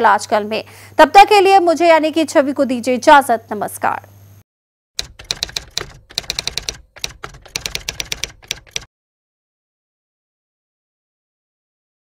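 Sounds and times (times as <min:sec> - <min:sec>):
rapid keystroke clicks: 0:05.0 - 0:08.9.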